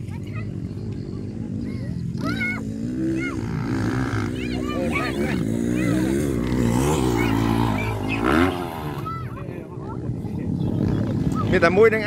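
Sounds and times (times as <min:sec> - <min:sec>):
dirt bike engines revving: 0:00.0 - 0:12.0
people calling out: 0:01.5 - 0:09.7.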